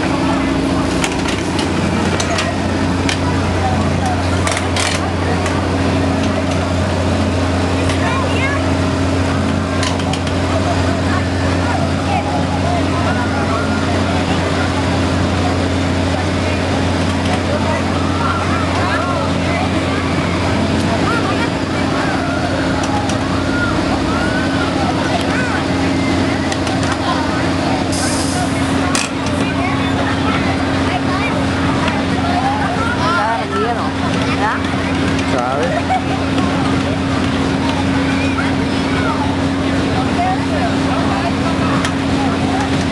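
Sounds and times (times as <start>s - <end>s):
crowd chatter: 0.0s - 42.9s
low drone of machinery: 0.0s - 42.9s.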